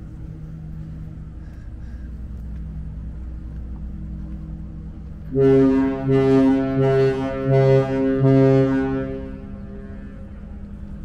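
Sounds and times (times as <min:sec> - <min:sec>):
ship engines humming: 0:00.0 - 0:11.0
ship horn blast: 0:05.2 - 0:11.0.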